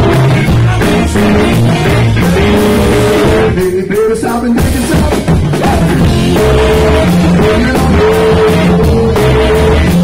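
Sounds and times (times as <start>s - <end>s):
rock and roll band playing: 0.0s - 10.0s.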